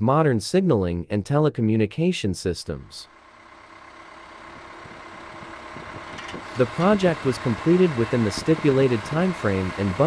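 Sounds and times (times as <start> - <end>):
engine idling: 3.0 - 10.0.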